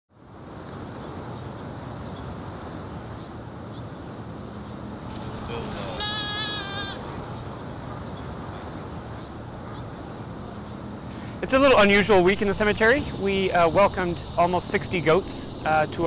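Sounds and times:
outdoor background noise: 0:00.1 - 0:16.0
goat bleating: 0:05.4 - 0:07.2.

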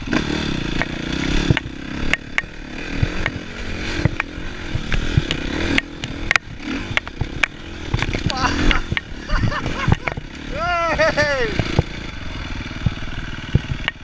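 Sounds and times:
dirt bike engine revving: 0:00.0 - 0:14.0
knocks and clatter over rocks: 0:00.8 - 0:10.3, 0:11.6 - 0:12.0, 0:12.7 - 0:14.0.

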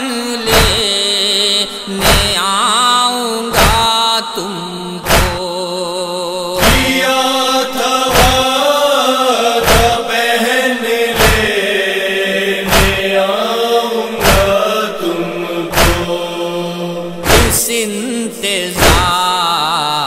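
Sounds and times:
mournful lament chanting: 0:00.0 - 0:20.0
chest-beating thumps: 0:00.5 - 0:00.9, 0:02.0 - 0:02.4, 0:05.0 - 0:05.4, 0:06.6 - 0:07.0, 0:08.1 - 0:08.4, 0:09.6 - 0:10.0, 0:11.1 - 0:11.6, 0:12.6 - 0:13.2, 0:14.2 - 0:16.4, 0:17.1 - 0:17.7, 0:18.8 - 0:19.1.

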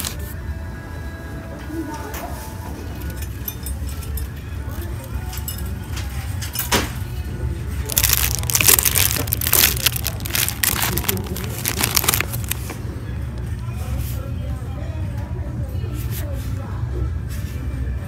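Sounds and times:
cellophane card packs crinkling: 0:07.8 - 0:12.7.

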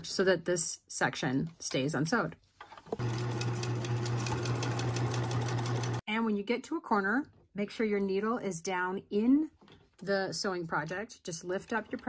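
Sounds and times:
sewing machine stitching: 0:03.0 - 0:06.0.

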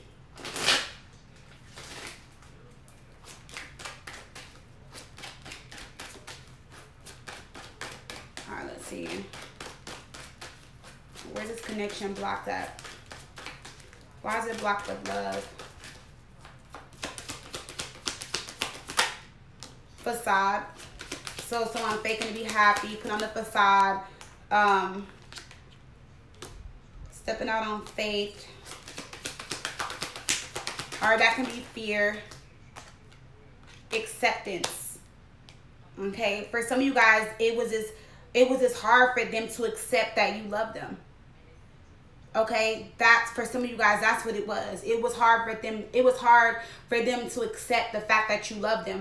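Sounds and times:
cards being shuffled: 0:00.4 - 0:26.6, 0:27.6 - 0:34.8.

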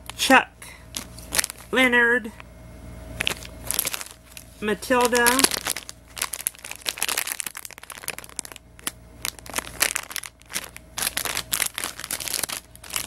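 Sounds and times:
plastic packaging crinkling: 0:00.9 - 0:01.8, 0:03.2 - 0:13.0.

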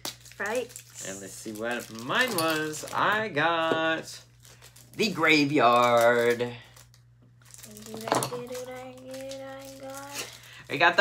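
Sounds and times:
packaging rustling: 0:00.0 - 0:03.3, 0:03.9 - 0:11.0.

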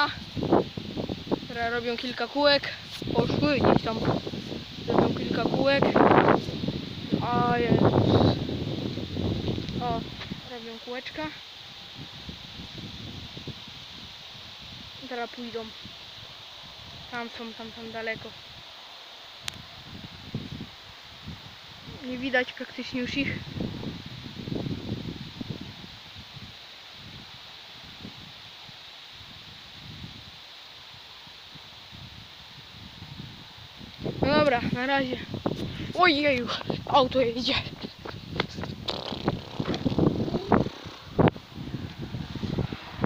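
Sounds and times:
wind rumble on microphone: 0:00.0 - 0:18.7, 0:19.4 - 0:43.0
leaves rustling in trees: 0:00.0 - 0:43.0
steady faint hiss: 0:00.0 - 0:43.0.

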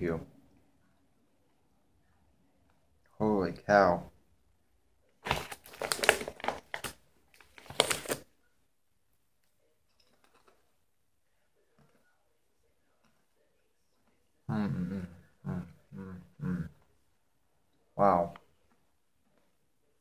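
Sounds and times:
chip bag crinkling: 0:05.2 - 0:08.2.

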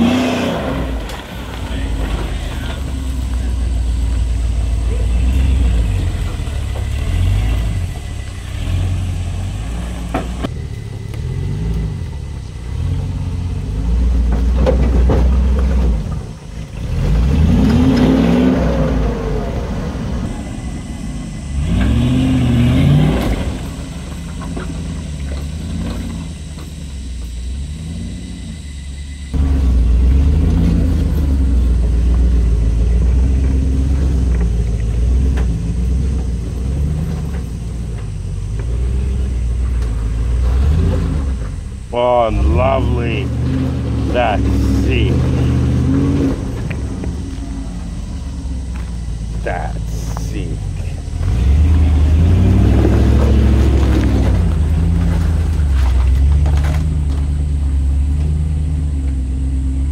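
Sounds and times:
engine revving while crawling: 0:00.0 - 0:59.9.

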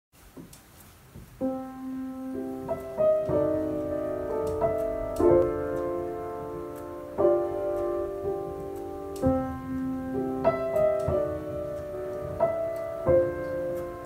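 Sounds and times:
piano chords: 0:01.3 - 0:14.0
faint clicks: 0:04.3 - 0:06.0.

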